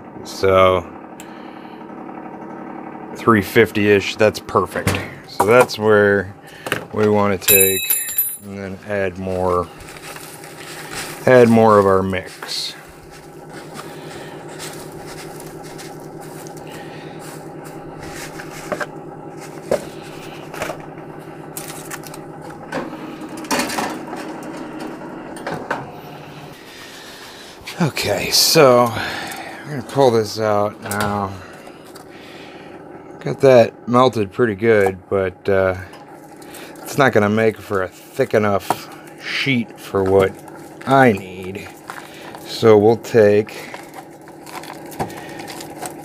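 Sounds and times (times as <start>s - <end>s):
convection fan humming: 0.0s - 46.0s
plastic rustling in foil pan: 9.6s - 17.4s, 43.5s - 46.0s.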